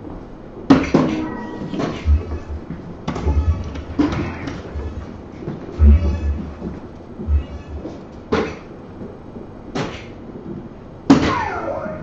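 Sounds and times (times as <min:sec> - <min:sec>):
low rumbling thuds: 0:00.6 - 0:11.2.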